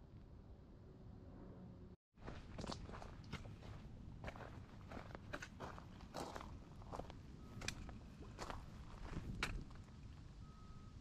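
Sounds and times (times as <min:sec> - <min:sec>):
footsteps on dirt trail: 0:02.2 - 0:09.8.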